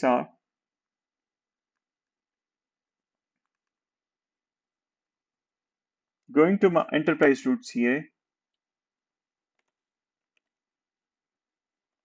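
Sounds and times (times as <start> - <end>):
faint keyboard keystrokes: 3.1 - 3.8, 9.5 - 10.6.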